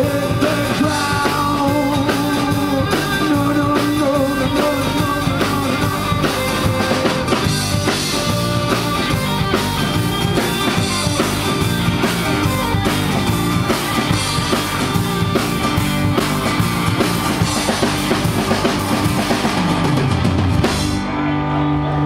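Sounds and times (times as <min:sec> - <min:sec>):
rock band playing: 0:00.0 - 0:22.0.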